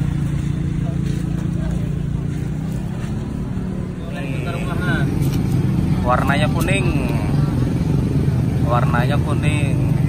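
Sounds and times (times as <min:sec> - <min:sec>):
people talking in background: 0:00.0 - 0:10.0
vehicle engine humming: 0:00.0 - 0:10.0.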